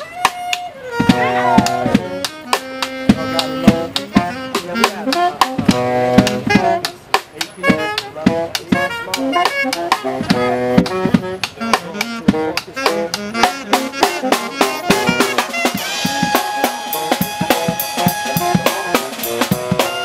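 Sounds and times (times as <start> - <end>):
saxophone melody: 0.0 - 20.0
drum kit struck with sticks: 1.0 - 20.0.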